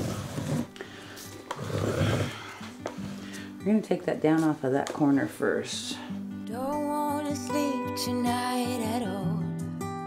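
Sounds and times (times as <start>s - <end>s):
canvas scraping on plastic: 0.0s - 0.8s, 1.4s - 3.1s
quiet background music: 0.0s - 10.0s.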